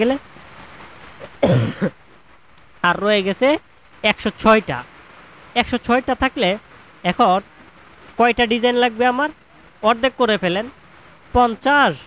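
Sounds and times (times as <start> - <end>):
man speaking: 0.0 - 0.2, 2.8 - 4.9, 5.6 - 7.5, 8.2 - 12.0
man coughing: 1.2 - 2.0.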